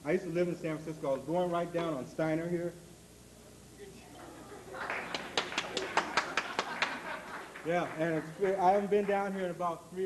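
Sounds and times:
hand clapping: 4.8 - 9.2.

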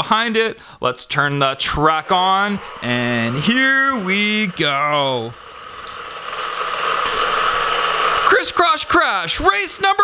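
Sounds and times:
toy motors whirring: 1.6 - 10.0.

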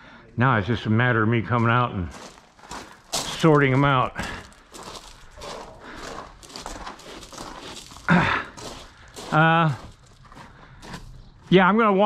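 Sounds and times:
footsteps on gravel: 1.6 - 11.8.

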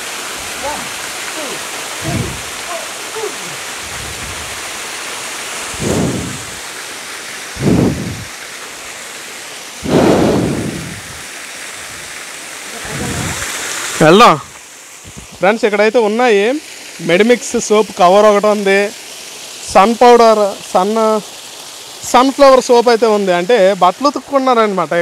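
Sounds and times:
small waterfall rushing: 0.0 - 25.0.

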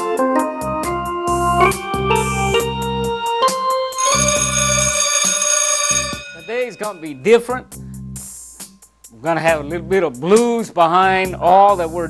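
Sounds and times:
held organ-like keyboard chord: 0.0 - 4.8.

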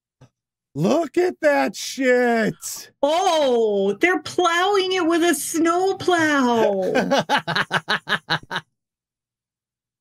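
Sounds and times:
man laughing hard: 6.6 - 8.6.

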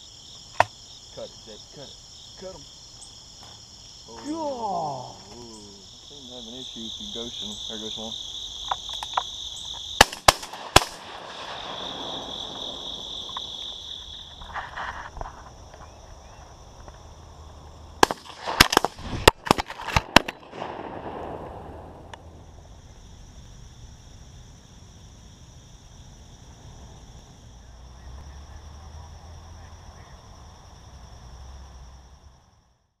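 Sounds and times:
field insects chirring: 0.0 - 33.0
shotgun shots: 10.0 - 13.6, 18.0 - 22.0.

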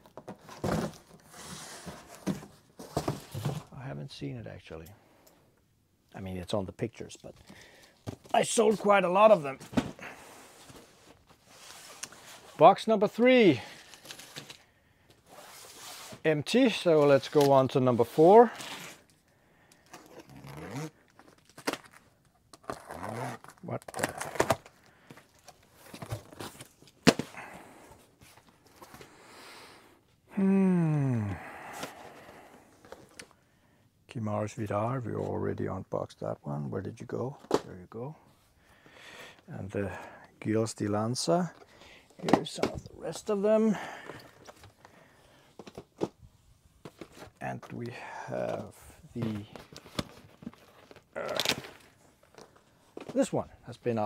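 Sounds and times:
cardboard scraping and rustling: 0.1 - 3.7
man muttering: 30.3 - 31.4.

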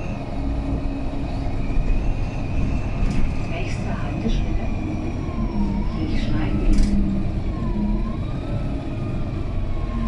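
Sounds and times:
diesel engine low rumble: 0.0 - 10.0.

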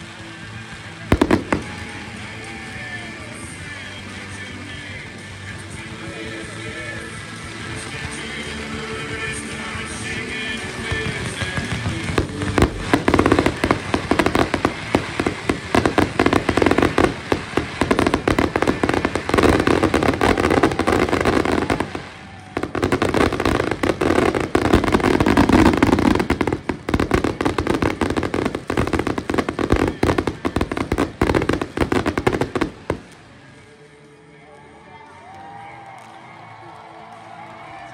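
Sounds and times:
fireworks bangs and crackles: 0.0 - 33.9
music: 0.0 - 37.9.

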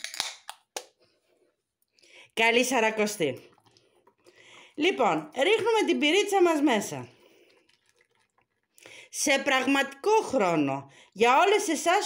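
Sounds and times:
beer pouring into glass bowl: 2.4 - 12.0.

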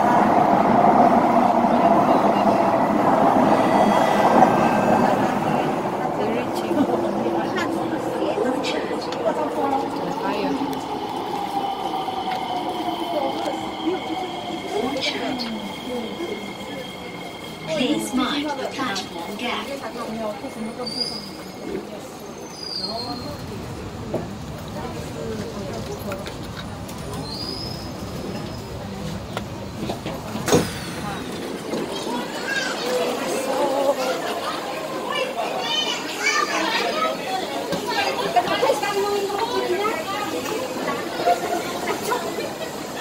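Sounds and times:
metro train running: 0.0 - 43.0.

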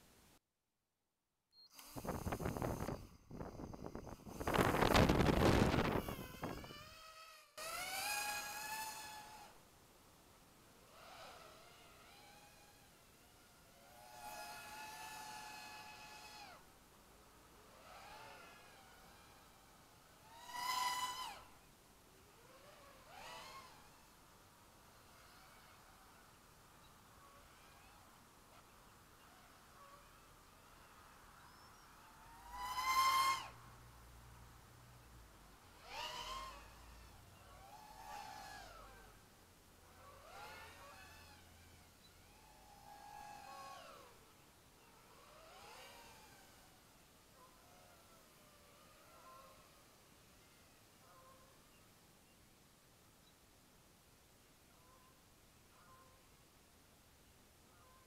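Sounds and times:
drone motors whining: 1.8 - 9.6, 10.6 - 33.6, 35.6 - 51.6.

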